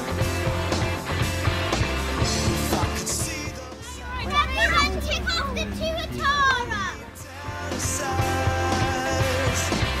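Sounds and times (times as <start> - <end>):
children talking excitedly: 3.5 - 7.4.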